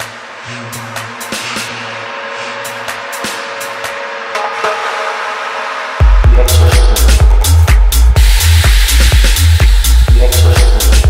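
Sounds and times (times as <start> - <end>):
hi-hat percussion ticks: 6.2 - 11.0.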